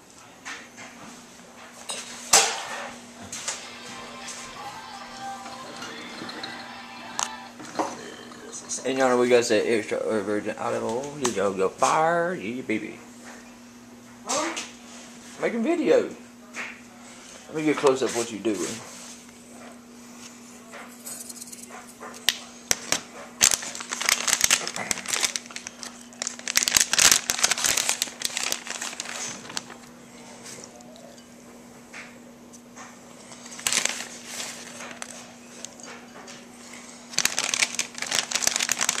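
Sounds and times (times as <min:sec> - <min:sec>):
faint steady hum: 0:01.5 - 0:39.0
plastic bag crinkling: 0:22.7 - 0:29.9, 0:33.3 - 0:35.8, 0:36.9 - 0:39.0.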